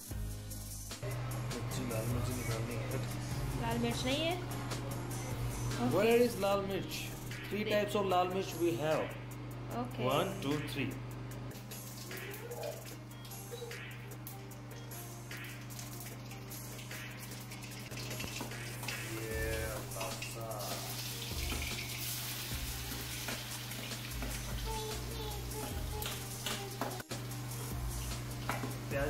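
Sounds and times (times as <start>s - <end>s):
background music: 0.0s - 29.0s
garlic and onion sizzling in oil: 15.6s - 29.0s.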